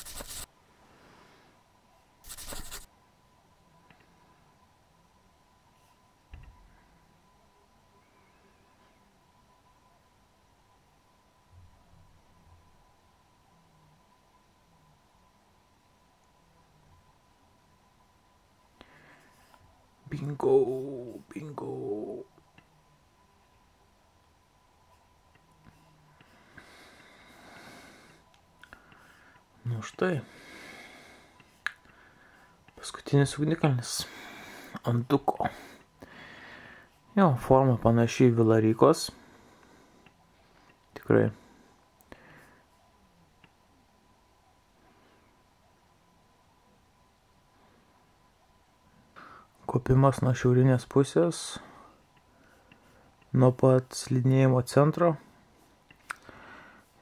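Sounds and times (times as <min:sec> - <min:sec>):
hand rubbing hard surface: 0:00.0 - 0:00.5, 0:02.2 - 0:02.9
faint breath through nose: 0:35.5 - 0:37.0, 0:56.2 - 0:57.0.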